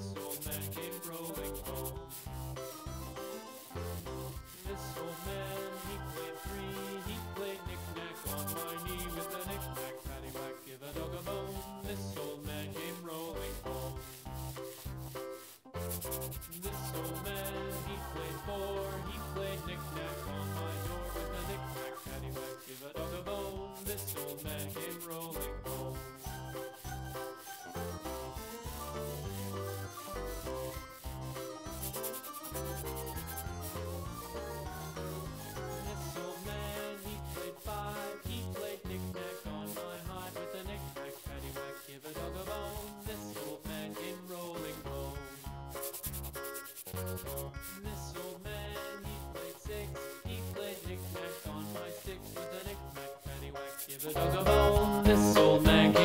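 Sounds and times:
background music: 0:00.0 - 0:56.0
marker scratching on ball: 0:00.0 - 0:56.0.

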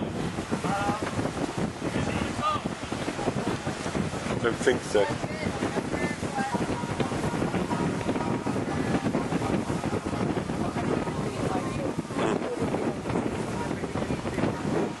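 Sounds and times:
surf washing onto beach: 0:00.0 - 0:15.0
wind buffeting microphone: 0:00.0 - 0:15.0.

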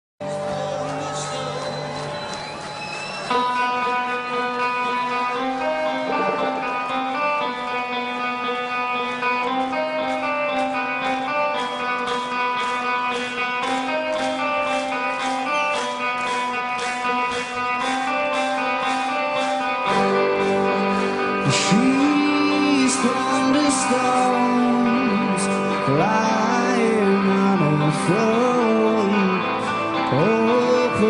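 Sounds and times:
electric guitar riff: 0:00.2 - 0:31.0.

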